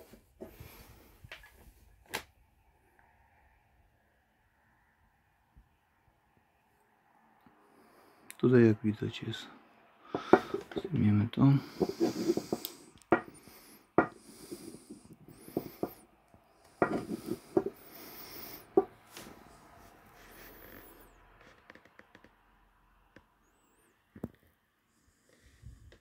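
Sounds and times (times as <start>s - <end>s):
glass bottle clicks and knocks: 16.8s - 17.7s.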